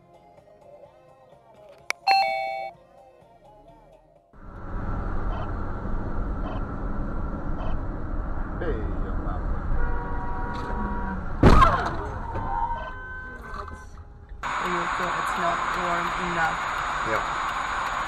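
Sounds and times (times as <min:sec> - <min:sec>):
electronic ding-dong chime: 0:02.0 - 0:02.7
car engine and road noise: 0:04.4 - 0:18.0.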